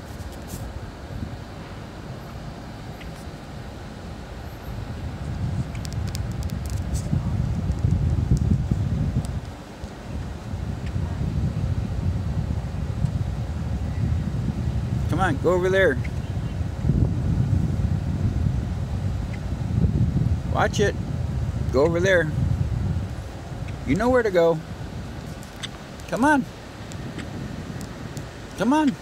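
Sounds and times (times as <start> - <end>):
vehicle rumble: 0.0 - 29.0
wind buffeting microphone: 0.0 - 29.0.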